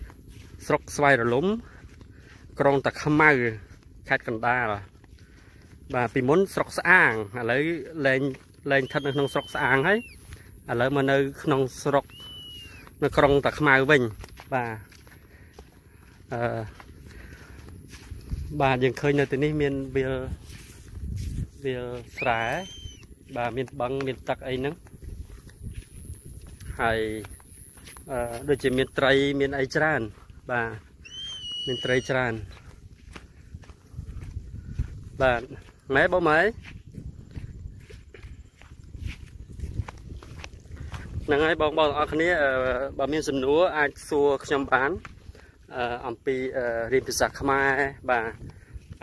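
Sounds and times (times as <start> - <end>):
footsteps on dirt path: 0.0 - 49.0
person talking: 16.2 - 16.8, 18.4 - 20.4, 21.5 - 24.8, 26.6 - 27.4, 28.0 - 30.8, 35.2 - 36.7, 41.2 - 45.0, 45.7 - 48.4.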